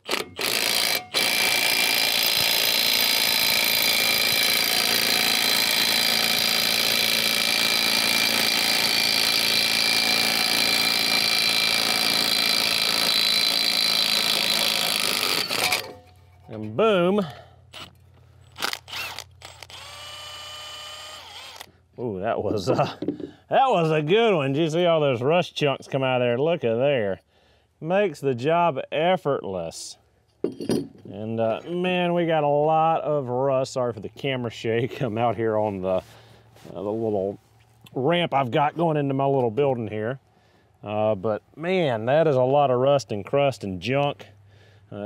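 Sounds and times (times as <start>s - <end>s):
impact wrench hammering: 0.0s - 16.1s.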